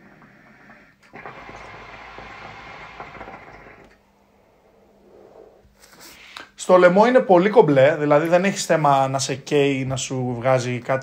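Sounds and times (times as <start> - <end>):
faint breath out: 5.1 - 6.6.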